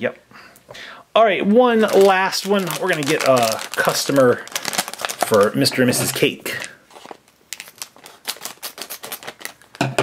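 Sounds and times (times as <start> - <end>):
plastic packet crinkling: 1.6 - 9.9.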